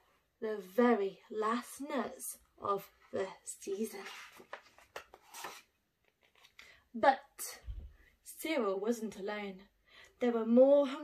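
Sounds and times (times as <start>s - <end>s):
book page turning: 3.8s - 6.8s.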